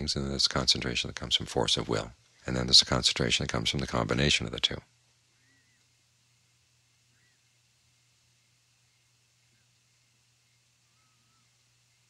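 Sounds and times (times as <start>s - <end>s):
light hiss: 0.0s - 12.0s
low steady hum: 0.0s - 12.0s.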